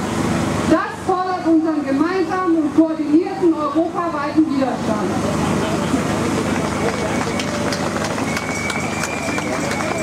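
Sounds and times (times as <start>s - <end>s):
crowd applauding: 5.8s - 10.0s.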